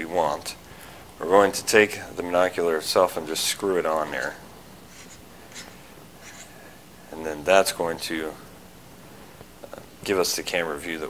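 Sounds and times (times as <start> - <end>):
faint scratchy rubbing: 4.1 - 6.6
brief thread scrapes: 4.9 - 6.6.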